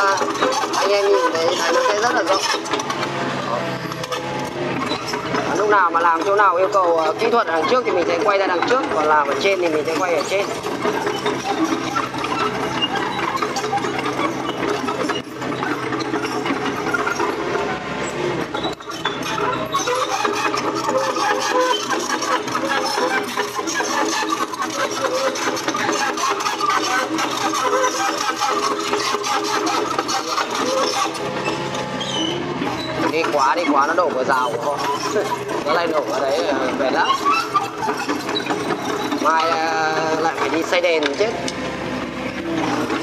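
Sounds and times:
excavator diesel engine running: 0.0s - 43.0s.

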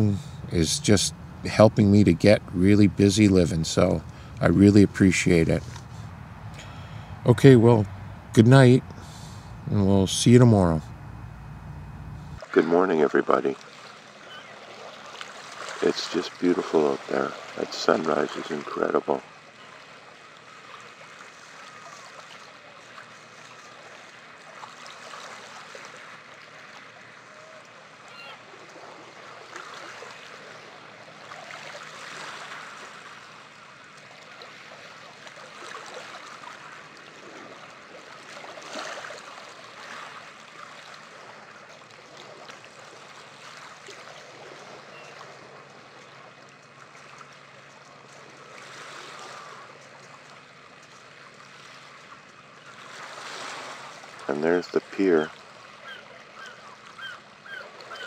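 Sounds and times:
small waves washing onto beach: 12.4s - 58.0s.

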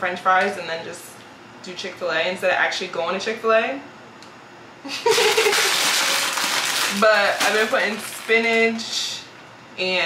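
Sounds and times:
person laughing: 4.8s - 6.2s
plastic bag rustling: 5.0s - 9.0s.

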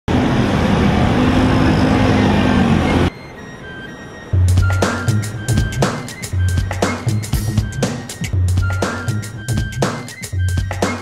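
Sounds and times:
heavy road noise: 0.1s - 11.0s.

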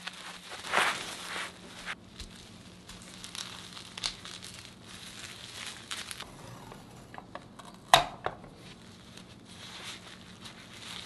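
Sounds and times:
bubble wrap crinkling: 0.0s - 6.3s, 8.5s - 11.0s.

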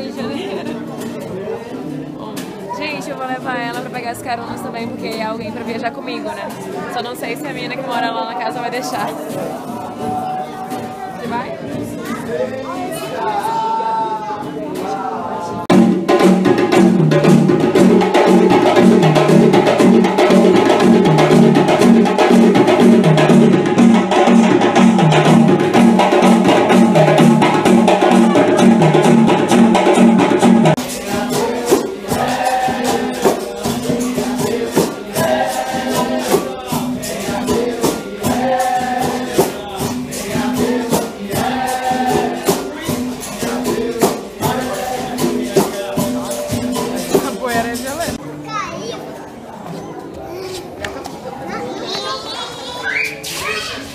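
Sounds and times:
voices singing: 0.0s - 15.8s, 25.1s - 48.2s
hand drum: 2.4s - 10.2s, 15.7s - 48.2s
djembe ensemble drumming: 15.6s - 48.2s.

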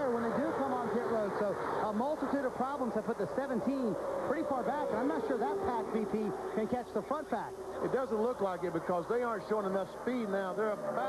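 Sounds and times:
man commentating: 0.0s - 11.0s.

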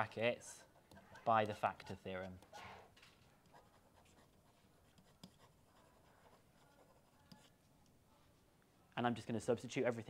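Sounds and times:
stylus writing on a screen: 0.0s - 8.2s.

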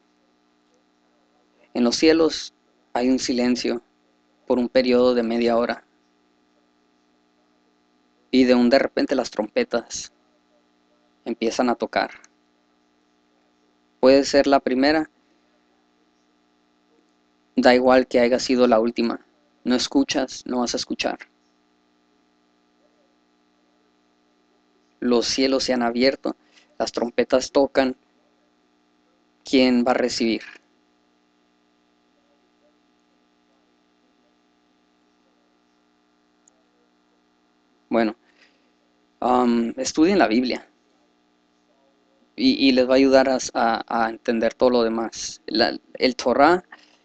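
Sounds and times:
faint electrical hum: 0.0s - 47.0s.

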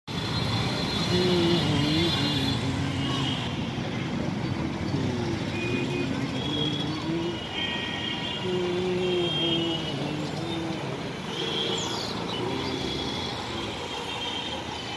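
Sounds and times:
vehicle engines rumbling: 0.1s - 14.9s.

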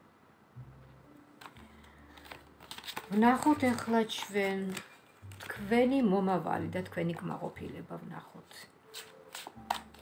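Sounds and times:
cards slapping together: 1.4s - 5.5s, 8.9s - 10.0s
cards sliding: 1.4s - 5.5s, 8.9s - 10.0s.

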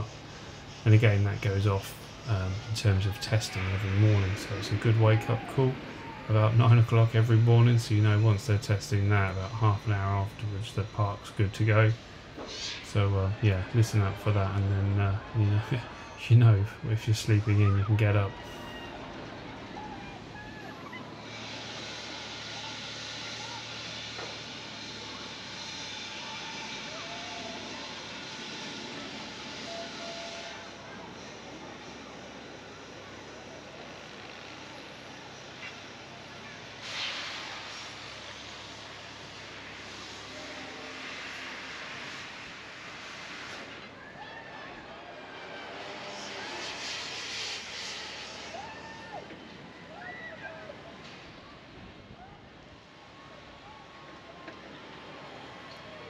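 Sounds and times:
distant voices: 0.0s - 56.0s
rushing hiss: 12.0s - 14.3s, 21.1s - 31.6s, 35.4s - 43.9s, 45.2s - 49.3s.

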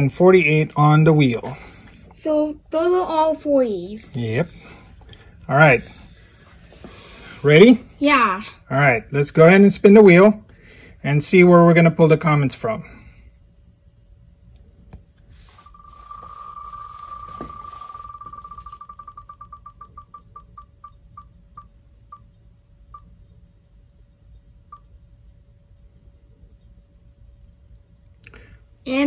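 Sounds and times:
faint steady hum: 0.0s - 29.0s
spinning wheel ticks: 15.6s - 22.2s.

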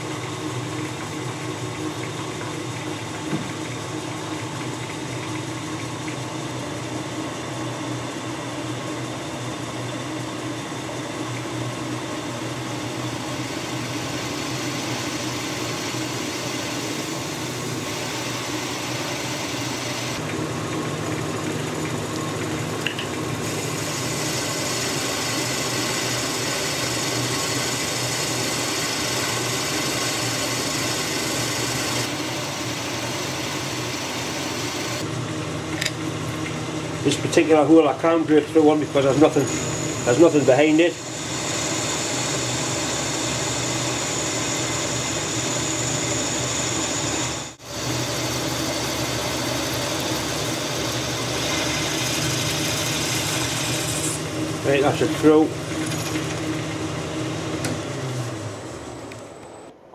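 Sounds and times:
lathe motor and gear hum: 0.0s - 59.9s
drill cutting hiss: 12.7s - 20.2s, 23.4s - 35.1s, 38.8s - 57.7s.

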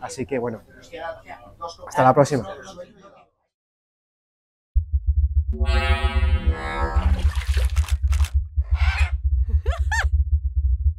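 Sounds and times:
fluttering low rumble: 4.8s - 10.9s
synthesizer note: 5.5s - 7.8s.

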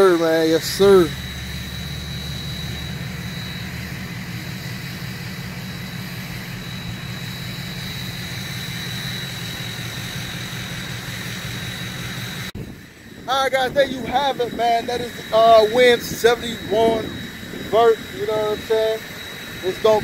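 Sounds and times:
low mechanical drone: 0.0s - 20.0s
thin high tone: 0.0s - 20.0s.

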